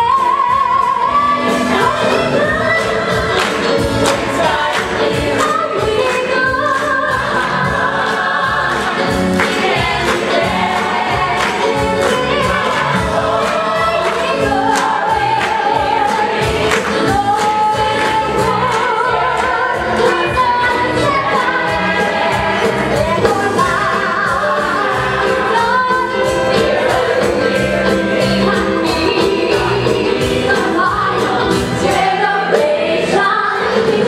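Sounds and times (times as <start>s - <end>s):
choir singing gospel-style song: 0.0s - 34.0s
instrumental accompaniment: 0.0s - 34.0s.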